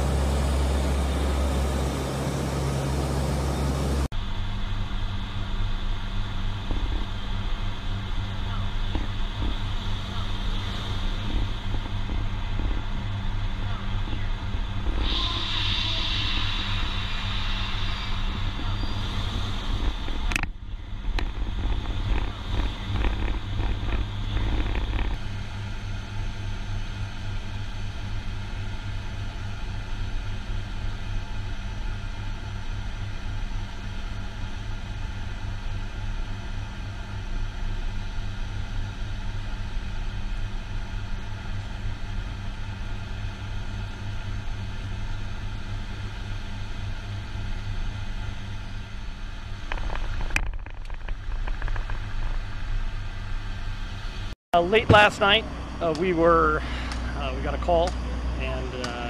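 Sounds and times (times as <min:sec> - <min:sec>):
vehicle engine drone in cabin: 0:00.0 - 0:59.0.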